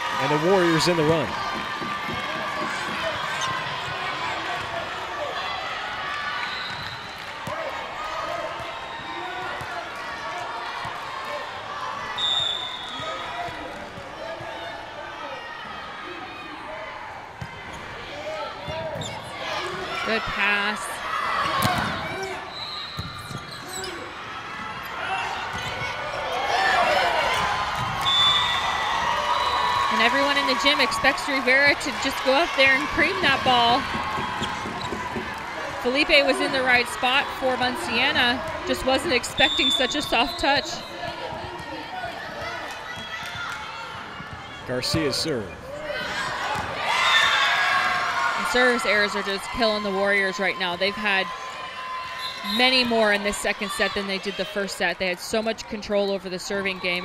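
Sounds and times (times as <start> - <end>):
voices calling and chattering: 0.0 - 57.0
ball bouncing on wooden court: 1.0 - 4.0, 21.4 - 22.0, 23.0 - 23.6, 33.1 - 36.0.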